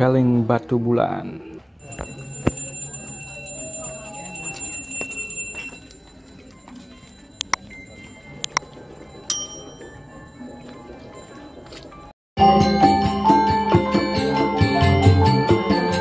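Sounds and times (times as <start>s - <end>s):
murmur of voices: 0.0s - 12.1s
sharp bell strikes: 1.8s - 5.9s, 7.6s - 11.6s
metallic bell ringing: 1.8s - 16.0s.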